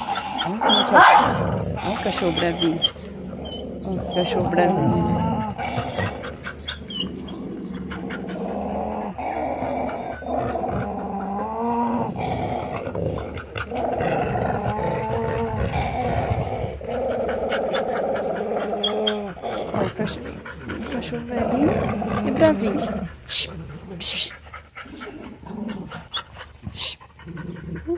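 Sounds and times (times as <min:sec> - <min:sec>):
dog growling: 0:00.0 - 0:27.9.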